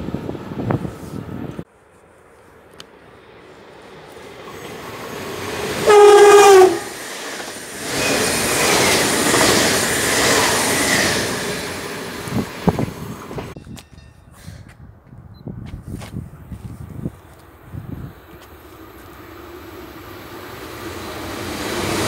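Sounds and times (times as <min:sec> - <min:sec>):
train wheel and rail noise: 0:00.0 - 0:22.0
train horn blast: 0:05.8 - 0:07.0.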